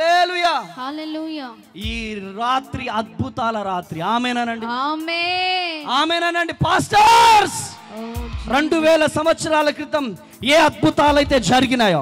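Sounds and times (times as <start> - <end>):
man's amplified voice shouting: 0.0 - 0.8, 5.7 - 10.0.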